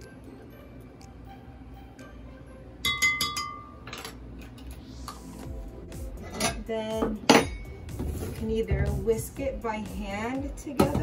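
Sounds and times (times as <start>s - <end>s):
spoon clinking against glass bowl: 2.8s - 4.1s.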